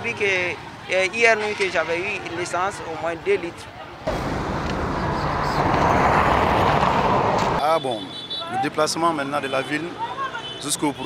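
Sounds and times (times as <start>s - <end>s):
road traffic rushing past: 0.0s - 11.0s.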